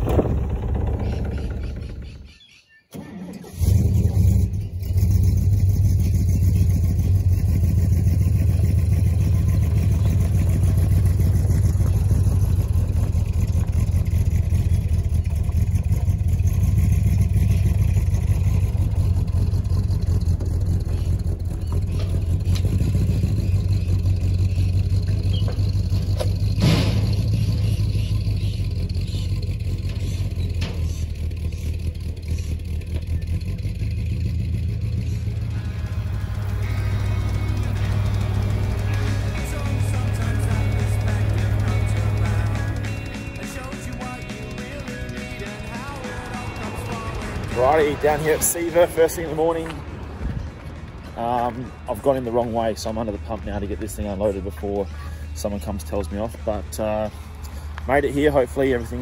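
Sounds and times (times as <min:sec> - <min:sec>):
car engine low rumble: 0:00.0 - 0:02.7, 0:03.4 - 0:59.0.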